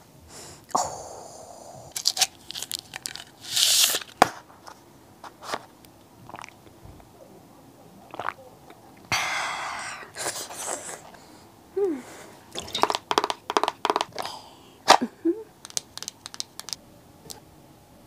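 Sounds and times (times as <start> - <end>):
plastic cup crinkling: 1.9 - 5.7, 12.5 - 14.3, 14.9 - 16.8
slurping through a straw: 6.3 - 6.6, 8.1 - 8.4.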